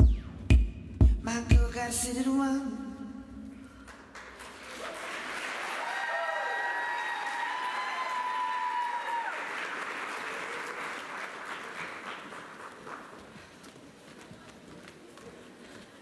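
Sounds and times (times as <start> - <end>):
audience applauding and cheering: 3.8 - 13.5
high cheers: 4.6 - 11.2.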